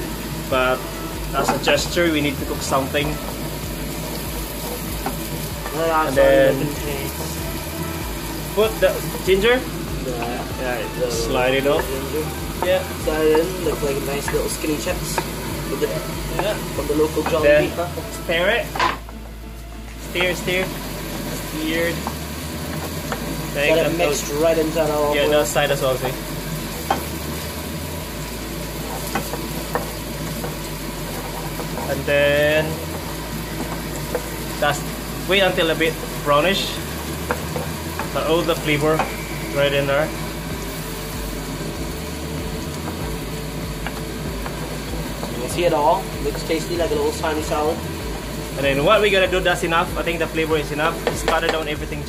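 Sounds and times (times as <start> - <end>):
wooden spoon stirring in wok: 0.0 - 10.6, 11.3 - 48.7
onion and garlic sizzling in oil: 0.0 - 52.0.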